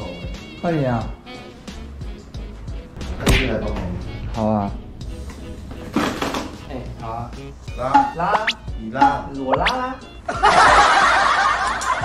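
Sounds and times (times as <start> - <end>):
canned audience laughter: 10.3 - 12.0.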